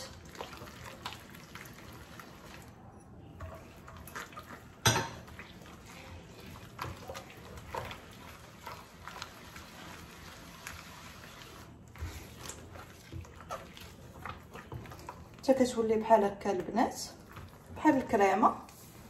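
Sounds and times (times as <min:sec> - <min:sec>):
wet squelching of batter: 0:00.0 - 0:02.8, 0:03.4 - 0:19.0.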